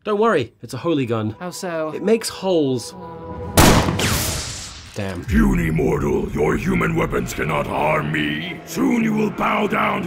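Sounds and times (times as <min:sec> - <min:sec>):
shotgun blast: 0:03.6 - 0:05.0.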